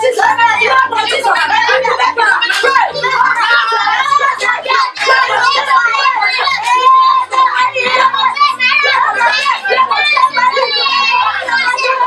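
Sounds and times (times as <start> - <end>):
children and woman praying aloud: 0.0 - 12.0.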